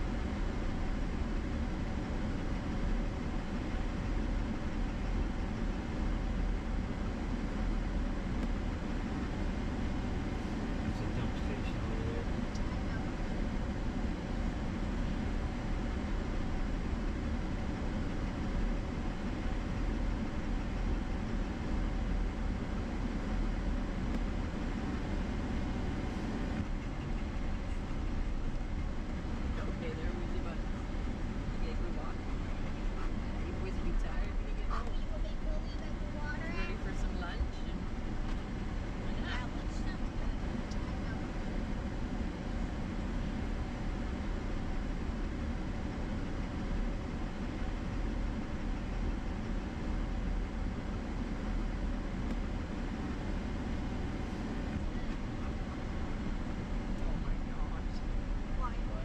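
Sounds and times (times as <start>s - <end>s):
pickup engine and tyre noise: 0.0s - 59.0s.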